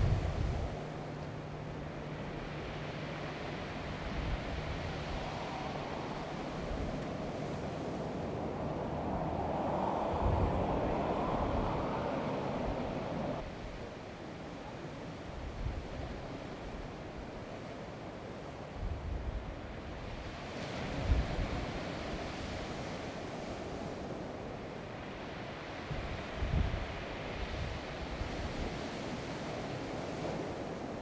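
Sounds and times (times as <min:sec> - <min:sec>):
wind noise on microphone: 0:00.0 - 0:01.0, 0:02.5 - 0:13.9, 0:18.8 - 0:23.0, 0:25.6 - 0:31.0
low steady hum: 0:00.0 - 0:15.2.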